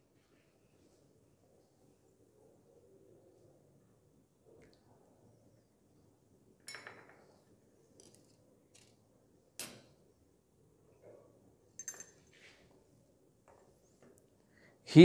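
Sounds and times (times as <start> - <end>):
glass clinks: 6.7 - 7.2, 11.8 - 12.3.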